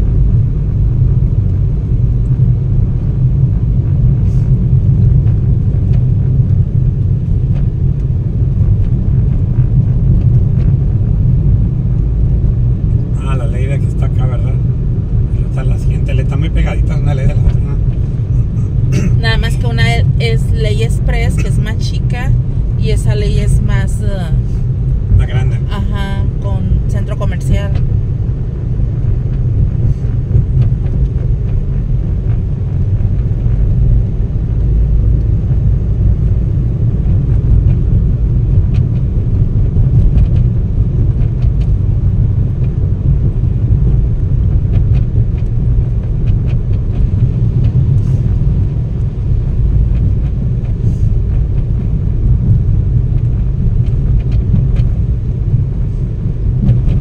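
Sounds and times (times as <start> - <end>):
car engine and road noise: 0.0 - 57.0.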